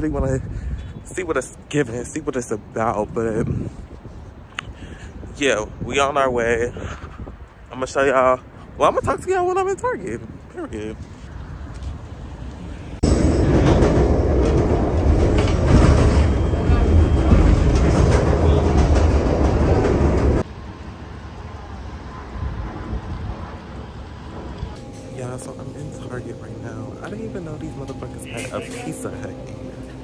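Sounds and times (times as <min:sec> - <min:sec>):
train running on track: 0:12.6 - 0:30.0.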